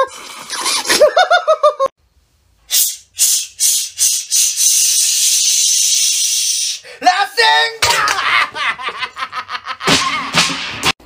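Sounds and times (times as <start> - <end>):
sharp hissing: 2.7 - 6.9.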